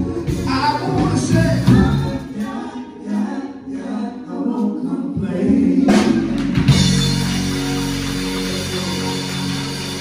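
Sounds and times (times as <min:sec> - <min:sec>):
bass guitar: 0:00.0 - 0:02.3, 0:05.2 - 0:10.0
drums: 0:00.0 - 0:03.3, 0:04.5 - 0:10.0
group singing: 0:00.0 - 0:07.8
keyboard: 0:00.0 - 0:10.0.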